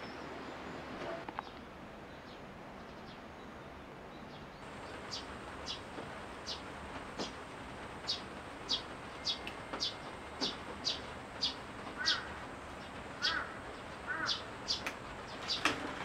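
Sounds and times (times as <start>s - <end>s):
lower bird calls: 8.0s - 16.0s.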